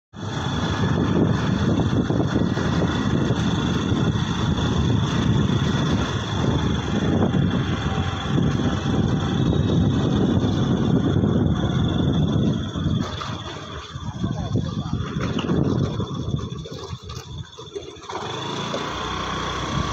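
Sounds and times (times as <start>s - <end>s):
wind buffeting microphone: 0.2s - 19.9s
faint high whine: 4.2s - 15.0s.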